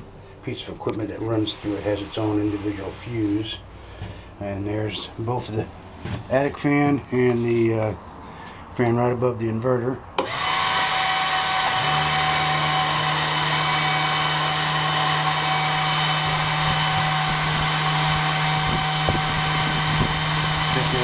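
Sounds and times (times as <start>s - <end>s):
cooling fans whirring: 0.0s - 9.2s, 10.0s - 21.0s
deeper hum: 14.0s - 21.0s.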